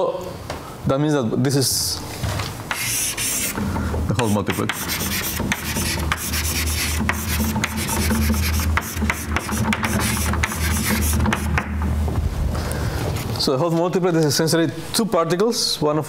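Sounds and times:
chalk scratching on blackboard: 2.7 - 11.7
chalk tapping: 2.7 - 12.0
low rumble: 12.0 - 13.2.

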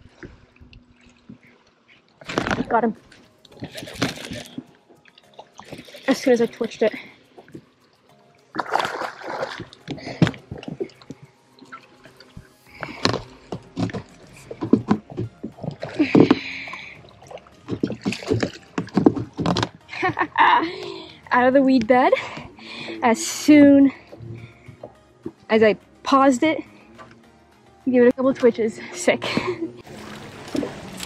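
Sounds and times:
fish splashing in water: 8.5 - 19.8, 29.8 - 31.0.

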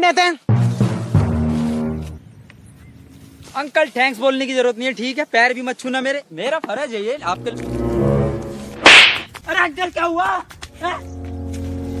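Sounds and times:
deep horn-like chord: 7.2 - 8.9, 10.6 - 12.0.

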